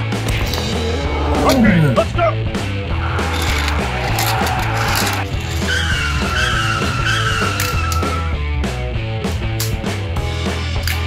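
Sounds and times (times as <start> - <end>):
car tire squeal: 2.9 - 8.4.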